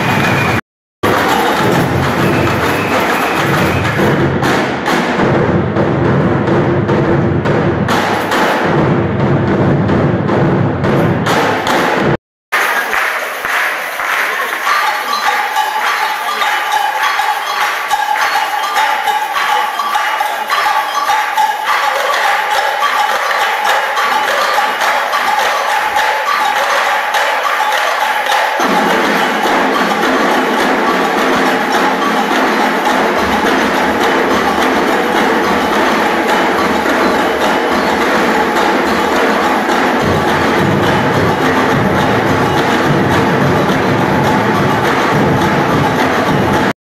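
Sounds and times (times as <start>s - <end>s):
drummers playing together: 0.0s - 46.7s.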